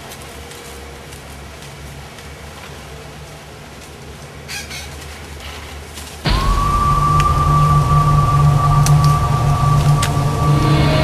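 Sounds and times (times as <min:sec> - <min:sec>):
deep rumbling drone: 0:06.3 - 0:11.0
high steady tone: 0:06.3 - 0:11.0.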